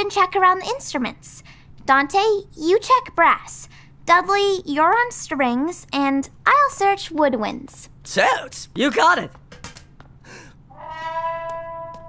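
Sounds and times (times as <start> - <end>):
trombone note: 10.7 - 12.0.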